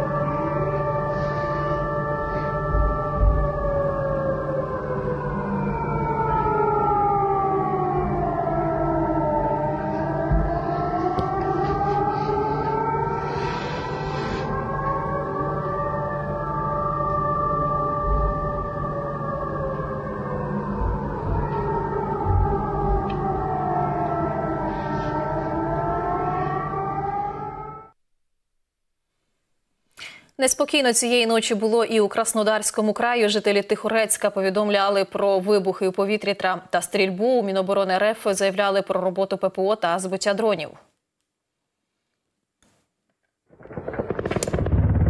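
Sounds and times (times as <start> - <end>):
air-raid siren wailing: 0.0 - 28.0
short low thumps: 43.6 - 45.0.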